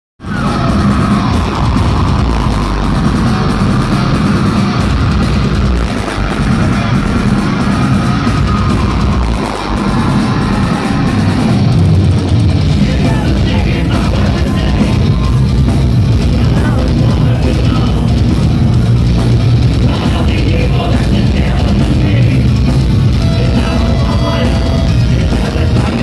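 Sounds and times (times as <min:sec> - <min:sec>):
heavy metal band playing live: 0:00.2 - 0:26.0.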